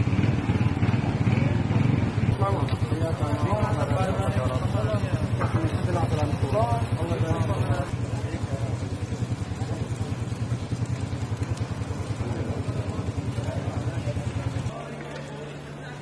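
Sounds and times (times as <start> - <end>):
engine droning: 0.0 - 16.0
people's voices: 1.0 - 16.0.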